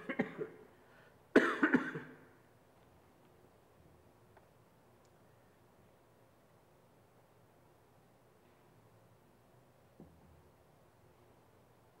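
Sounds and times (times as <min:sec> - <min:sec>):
person coughing: 0:00.0 - 0:00.6, 0:01.4 - 0:02.3.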